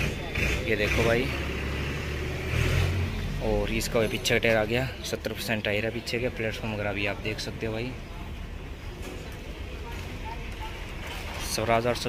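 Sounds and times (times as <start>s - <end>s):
diesel tractor engine rumbling: 0.0s - 12.0s.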